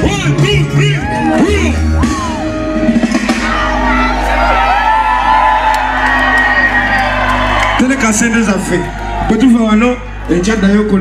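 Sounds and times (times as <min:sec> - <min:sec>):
loud live concert music: 0:00.0 - 0:11.0
crowd whooping: 0:00.8 - 0:11.0.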